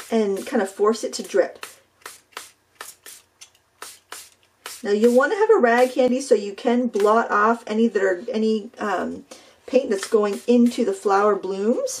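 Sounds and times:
spray bottle squirting hisses: 0:01.6 - 0:06.0.

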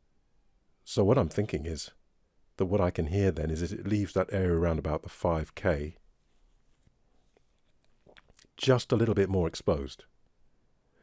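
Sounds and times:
faint small clicks: 0:06.8 - 0:08.6.

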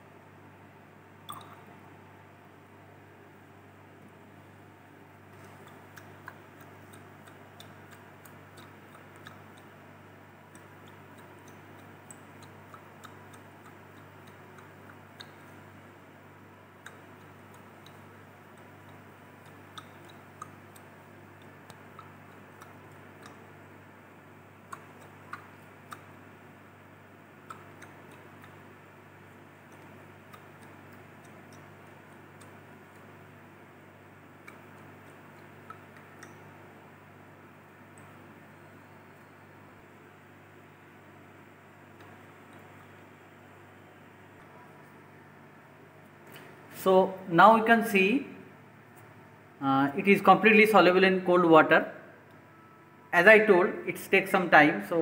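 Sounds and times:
low room hum: 0:00.0 - 0:55.0.

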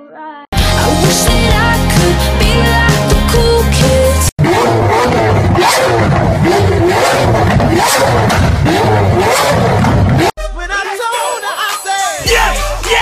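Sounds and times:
music: 0:00.5 - 0:04.3, 0:10.4 - 0:13.0
sports car engine revving: 0:04.3 - 0:10.4.

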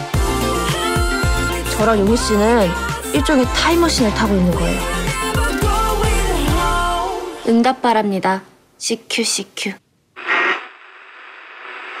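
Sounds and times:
radio static hiss: 0:10.1 - 0:12.0.

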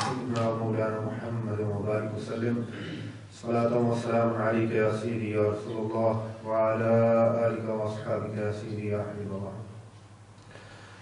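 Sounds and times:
man chanting: 0:00.0 - 0:09.7.

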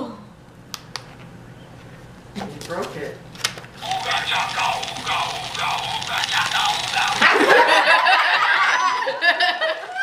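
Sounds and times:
speech from small speaker: 0:03.8 - 0:07.3.

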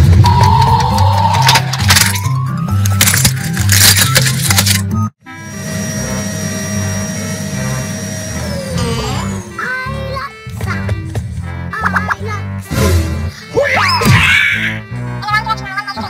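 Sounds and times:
plastic toy crunching under a tyre: 0:02.8 - 0:04.8.

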